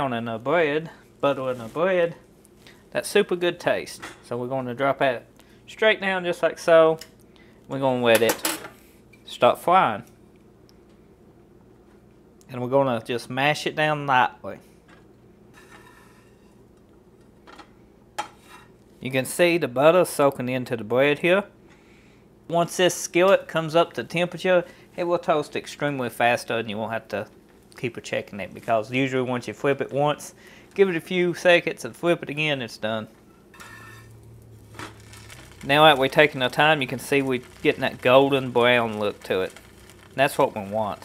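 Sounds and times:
bread sizzling in butter: 33.5 - 41.0.

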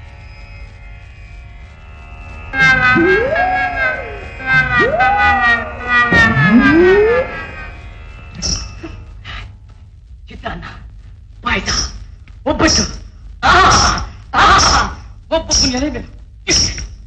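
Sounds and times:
sliding siren-like glides: 2.4 - 8.6
comic background music: 2.5 - 9.0.

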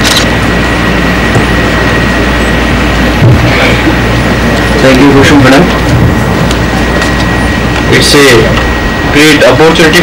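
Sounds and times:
low electrical hum: 0.0 - 10.0
steady loud hiss: 0.0 - 10.0
thin high whine: 0.0 - 10.0.

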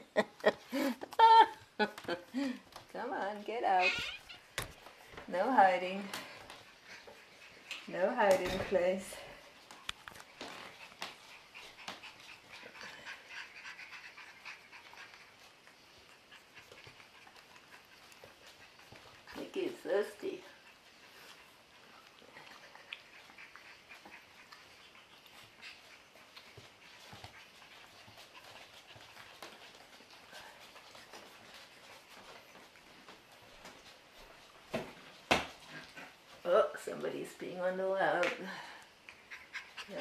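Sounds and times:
faint ticks and scuffs: 0.6 - 37.4
puppy whining: 3.7 - 4.6.

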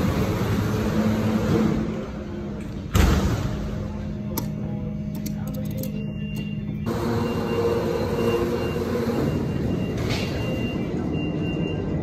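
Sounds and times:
high warning tone: 4.1 - 12.0.

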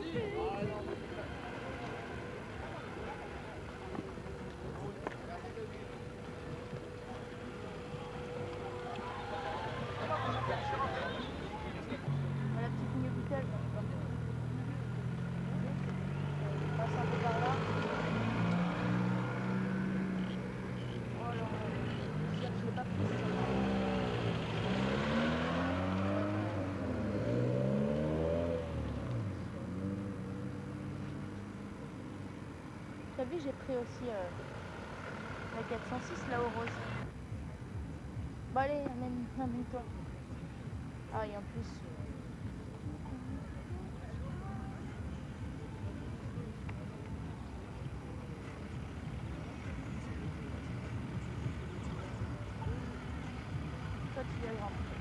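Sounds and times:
people talking: 0.0 - 26.5, 33.0 - 34.5, 35.4 - 37.1, 38.5 - 40.1, 41.1 - 55.0
car engine running and revving: 0.0 - 37.1.

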